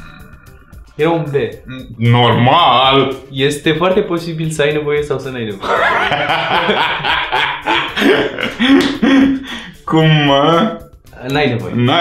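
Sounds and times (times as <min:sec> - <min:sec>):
men laughing heartily: 0:05.6 - 0:09.8.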